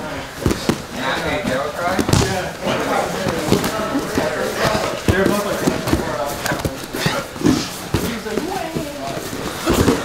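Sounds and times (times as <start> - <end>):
bodies thudding on mats: 0.4 - 10.0.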